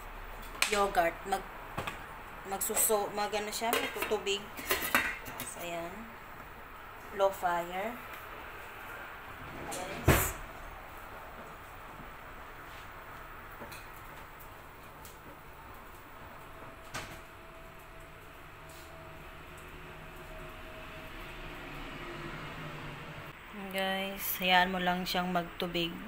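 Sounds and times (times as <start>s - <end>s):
kitchen background hum: 0.0s - 26.0s.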